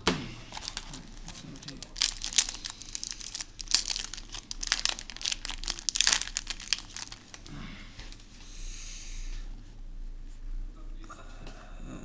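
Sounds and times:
foil wrapper crinkling and tearing: 0.5 - 8.2.

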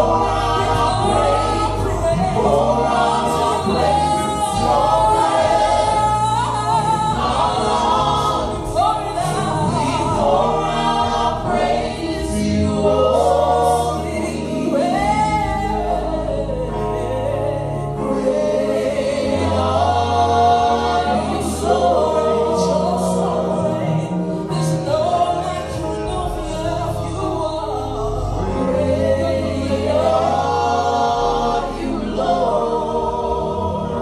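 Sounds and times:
group singing worship song: 0.0 - 34.0.

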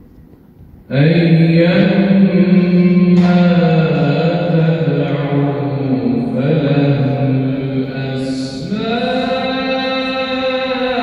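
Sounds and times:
man reciting melodically: 0.9 - 11.0.

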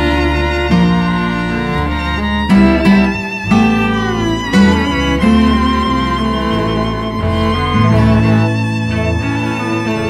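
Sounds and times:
bowed string notes: 0.0 - 10.0
low bass line: 0.0 - 10.0.

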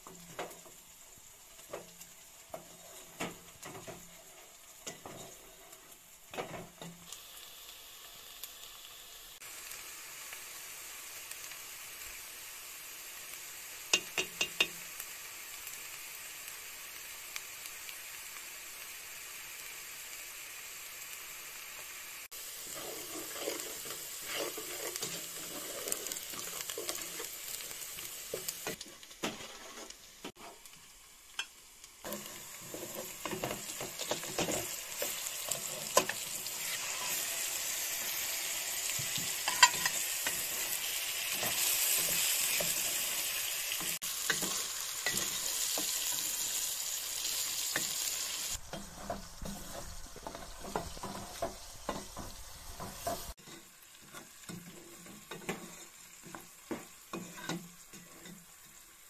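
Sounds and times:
food sizzling in hot oil: 0.0 - 59.0
spatula scraping a pot: 22.6 - 30.6, 32.1 - 37.4, 39.0 - 42.9, 48.6 - 58.8.

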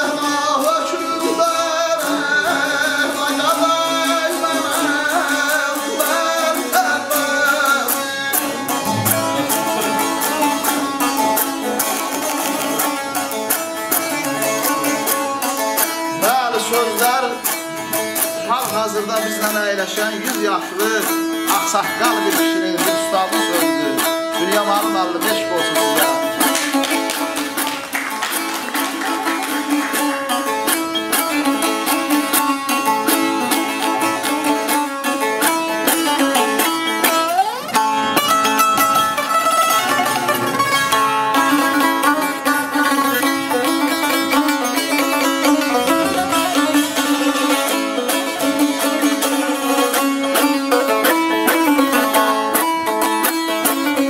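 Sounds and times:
saz rapid strumming: 0.0 - 54.0.

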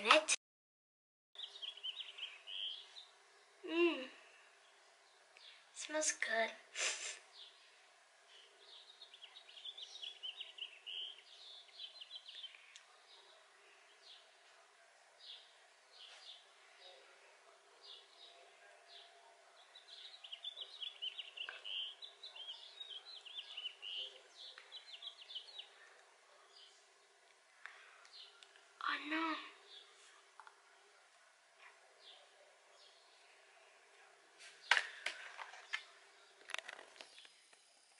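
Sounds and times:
faint bird twittering: 1.4 - 5.7, 7.3 - 14.3, 15.2 - 26.8.

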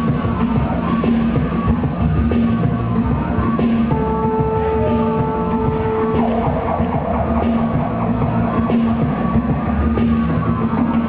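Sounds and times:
electronic-folk music with guitar: 0.0 - 11.0
low drone: 0.0 - 11.0
held high note: 3.9 - 9.2.

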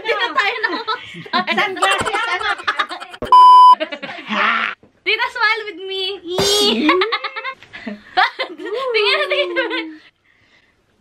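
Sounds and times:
people laughing: 1.4 - 4.2
high censor bleep: 3.3 - 3.8.

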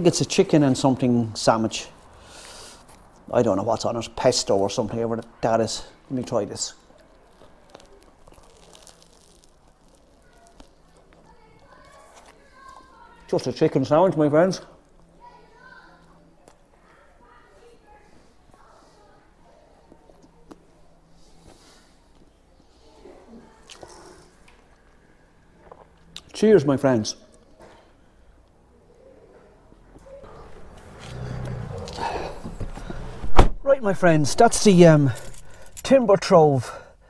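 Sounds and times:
person chewing: 6.9 - 11.3, 23.6 - 24.8
man chewing: 30.3 - 33.0.

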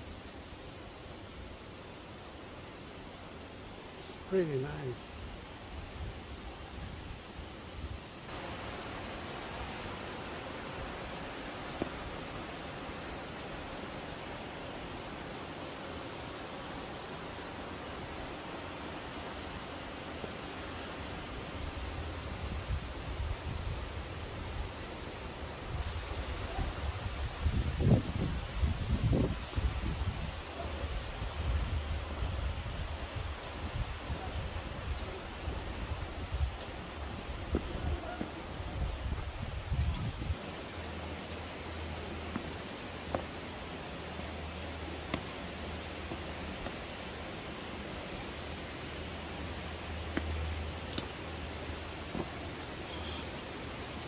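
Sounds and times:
wind buffeting microphone: 35.9 - 40.4.

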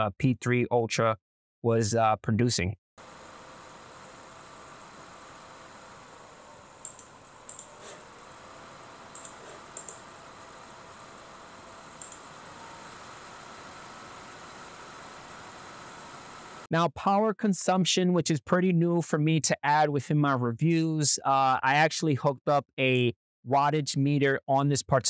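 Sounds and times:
cooling fans whirring: 3.0 - 16.7.

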